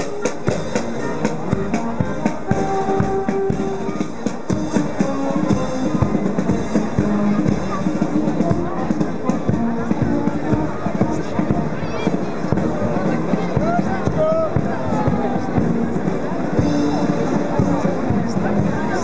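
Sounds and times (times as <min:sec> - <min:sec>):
bass drum beat: 0:00.0 - 0:19.0
marching brass band playing: 0:00.0 - 0:19.0.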